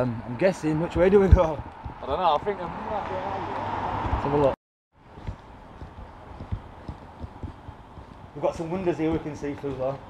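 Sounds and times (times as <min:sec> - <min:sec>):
footsteps on pavement: 0:00.8 - 0:10.0.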